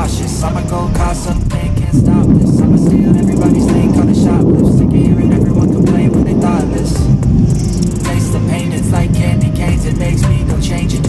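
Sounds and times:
faint song playing: 0.0s - 11.0s
wind buffeting microphone: 0.0s - 11.0s.

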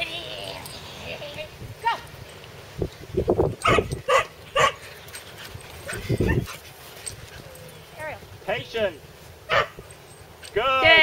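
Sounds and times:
dog barking: 3.6s - 4.8s, 9.5s - 9.8s.

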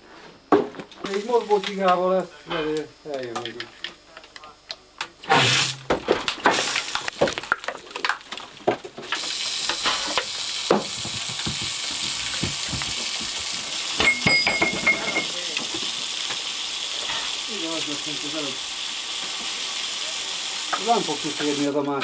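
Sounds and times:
air hissing from a hose: 5.3s - 5.8s, 9.1s - 14.1s, 14.7s - 21.8s.

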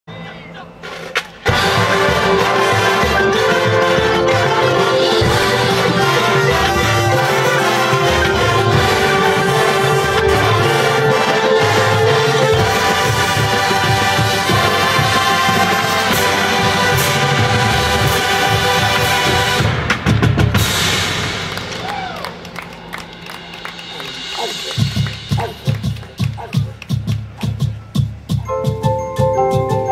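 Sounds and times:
marching drums: 0.7s - 29.9s
brass horns and tubas: 0.8s - 27.6s
mallet percussion: 1.5s - 19.5s, 22.9s - 29.9s.

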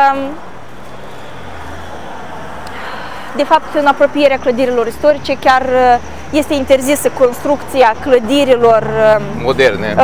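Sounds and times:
vehicles driving past: 0.0s - 10.0s.

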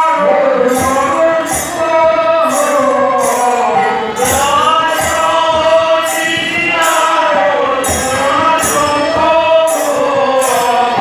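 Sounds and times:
accompanying music: 0.0s - 11.0s
group singing devotional chant: 0.0s - 11.0s.

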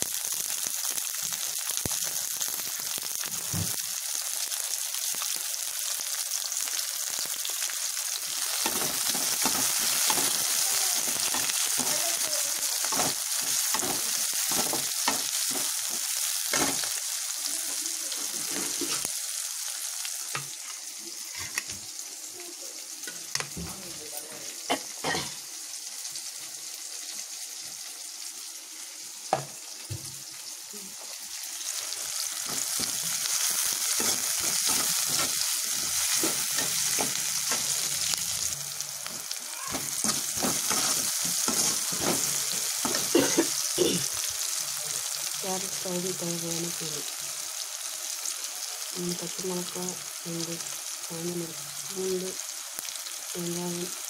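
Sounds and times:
onions sizzling in hot oil: 0.0s - 54.0s
metal ladle scraping pan: 39.7s - 43.1s.

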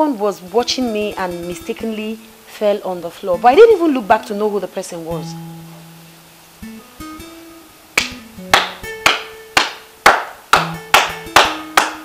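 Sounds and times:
plucked guitar music: 0.4s - 12.0s
man clapping hands: 8.0s - 12.0s.

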